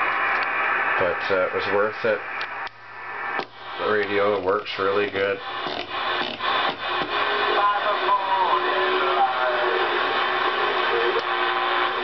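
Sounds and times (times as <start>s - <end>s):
radio hiss: 0.0s - 12.0s
music with singing over radio speaker: 4.8s - 12.0s.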